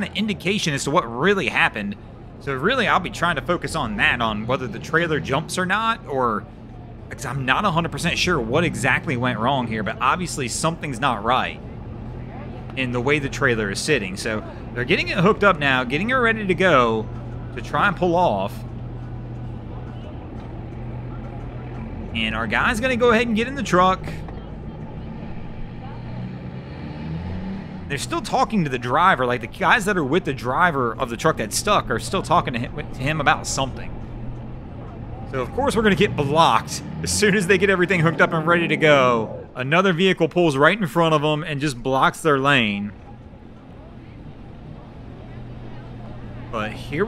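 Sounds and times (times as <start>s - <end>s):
outdoor background noise: 0.0s - 47.0s
vehicle engine idling: 0.0s - 47.0s.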